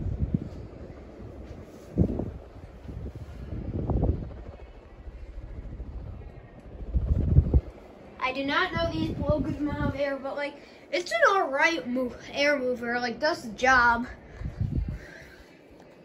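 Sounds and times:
ceiling fan air buffeting microphone: 0.0s - 16.0s.

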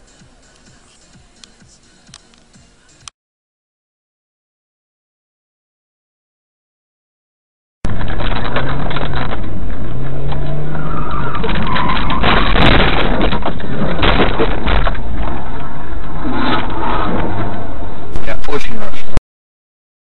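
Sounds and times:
road noise: 0.0s - 3.1s, 7.9s - 19.2s
car engine: 7.9s - 19.1s.

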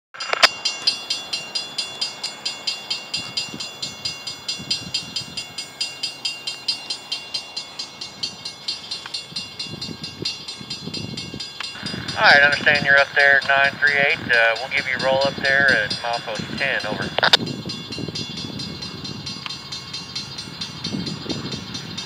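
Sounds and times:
railroad crossing bell ringing: 0.2s - 22.0s.

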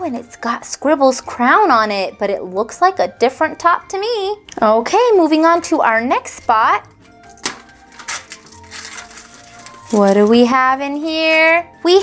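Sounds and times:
quiet background music: 0.0s - 12.0s
paper covering tearing: 7.4s - 10.4s.

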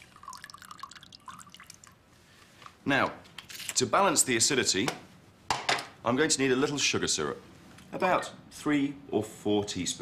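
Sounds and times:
juice dripping into a glass: 0.0s - 2.1s.

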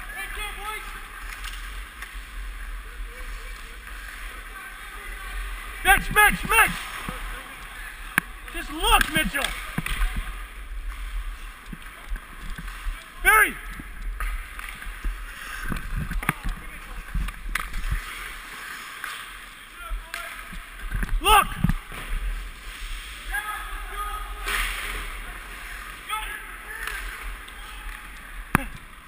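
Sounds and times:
skate blades scraping ice: 14.2s - 19.6s
person shouting: 21.2s - 21.6s.

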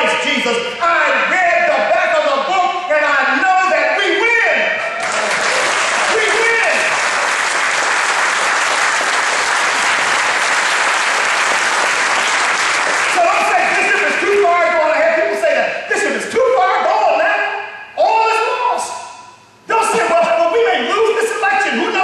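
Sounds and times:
congregation applauding: 4.9s - 14.4s.

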